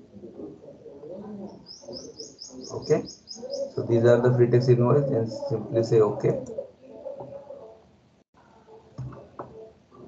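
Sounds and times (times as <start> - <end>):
faint low murmur: 0.0 - 10.0
bird chirping: 0.6 - 7.6.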